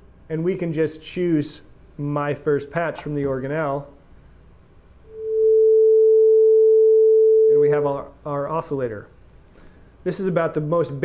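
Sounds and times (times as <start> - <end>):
steady sine tone: 5.0 - 7.9.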